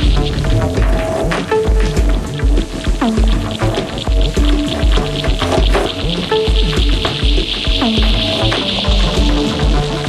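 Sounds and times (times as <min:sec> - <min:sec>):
drum machine kick beat: 0:00.0 - 0:10.0
gliding acid bass notes: 0:00.0 - 0:10.0
hissing high noise: 0:00.0 - 0:10.0.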